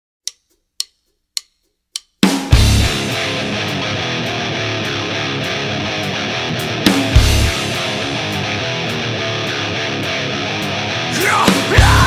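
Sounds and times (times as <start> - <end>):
rhythmic ticking: 0.2 - 3.4.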